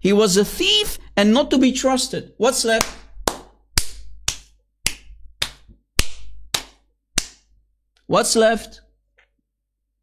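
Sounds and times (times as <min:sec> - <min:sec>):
sharp hand claps: 0:02.7 - 0:07.5.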